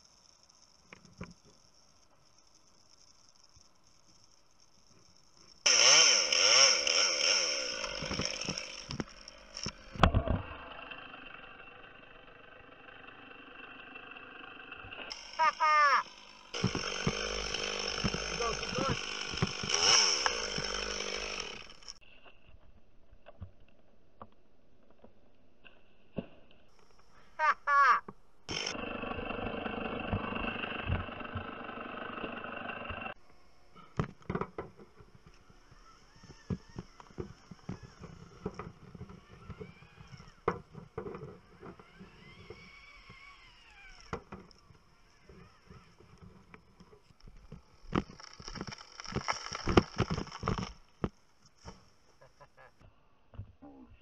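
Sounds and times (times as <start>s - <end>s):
chainsaw revving and idling: 5.6s - 22.0s, 28.5s - 33.2s, 34.7s - 51.7s.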